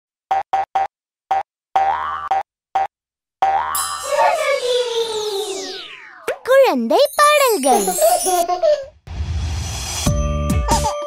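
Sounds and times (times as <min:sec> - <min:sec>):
bright sparkle shimmer: 0:03.8 - 0:05.9
bouncy synthesized jingle: 0:07.1 - 0:08.8.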